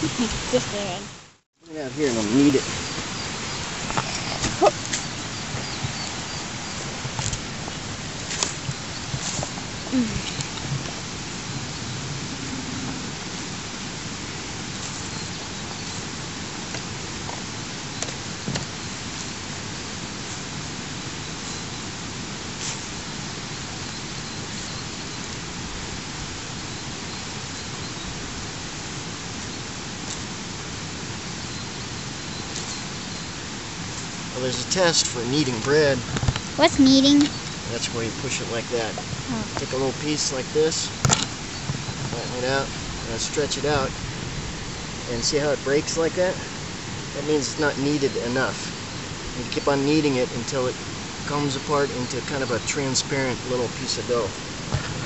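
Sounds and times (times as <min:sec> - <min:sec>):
steady hiss: 0:00.0 - 0:55.0.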